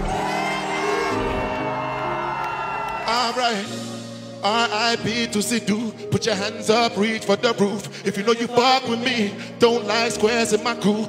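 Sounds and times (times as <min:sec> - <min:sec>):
crowd shouting and cheering: 0:00.0 - 0:04.2.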